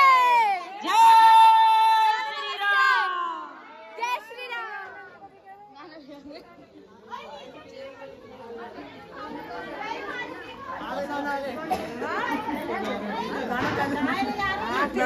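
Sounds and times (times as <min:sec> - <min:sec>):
people talking over one another: 0:00.0 - 0:15.0.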